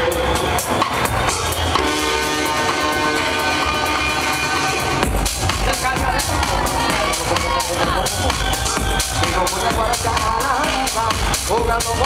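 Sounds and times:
minimal techno over sound system: 0:00.0 - 0:12.0
held synth chord: 0:01.8 - 0:05.1
steady kick drum: 0:05.0 - 0:12.0.

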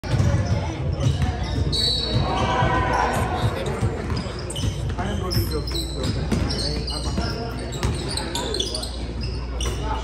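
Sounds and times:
sneaker squeak: 0:00.1 - 0:10.0.

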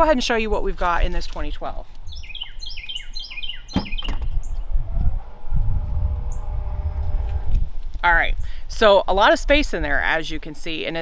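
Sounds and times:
small birds chirping: 0:02.0 - 0:05.2
low rumble: 0:04.3 - 0:08.6
faint steady hum: 0:04.6 - 0:08.6.

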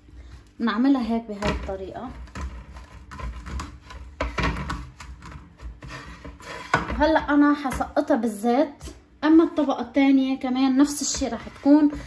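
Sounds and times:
dry pastry dough crackling: 0:00.4 - 0:07.4.

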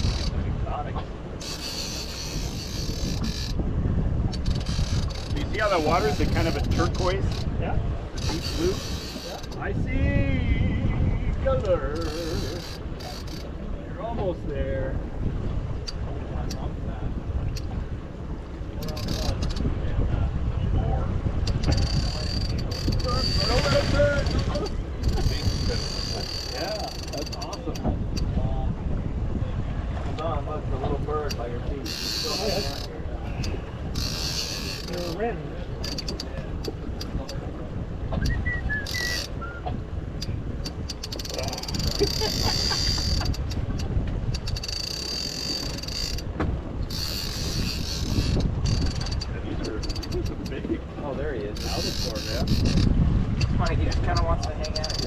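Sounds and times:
fishing reel whirring: 0:00.0 - 0:00.4, 0:01.4 - 0:03.6, 0:04.3 - 0:07.5, 0:08.2 - 0:09.6, 0:12.0 - 0:13.5, 0:18.8 - 0:19.6, 0:21.5 - 0:27.6, 0:31.8 - 0:35.2, 0:35.8 - 0:37.4, 0:38.2 - 0:39.6, 0:40.2 - 0:50.5, 0:51.5 - 0:55.0
wind on microphone: 0:00.0 - 0:55.0.

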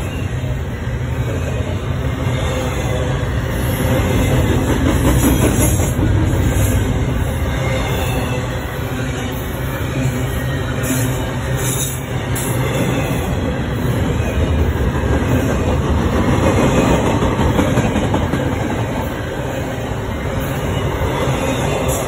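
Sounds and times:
freight train wheels rumbling on rail: 0:00.0 - 0:22.0.

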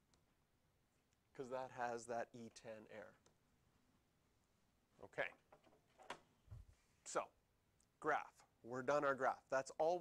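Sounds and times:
man speaking: 0:01.3 - 0:03.3, 0:04.9 - 0:05.5, 0:07.0 - 0:10.0.

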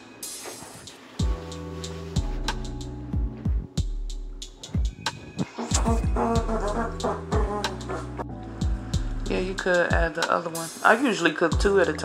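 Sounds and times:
music with deep bass: 0:00.8 - 0:10.2, 0:11.5 - 0:12.0.

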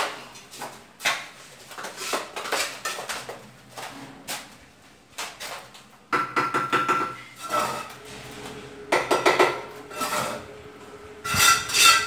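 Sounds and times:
trowel scraping mortar: 0:07.4 - 0:08.0, 0:09.9 - 0:10.4, 0:11.3 - 0:12.0.

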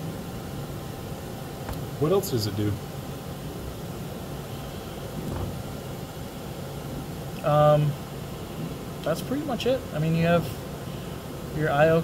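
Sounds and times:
mechanical hum: 0:00.0 - 0:12.0
even hiss: 0:06.8 - 0:12.0.

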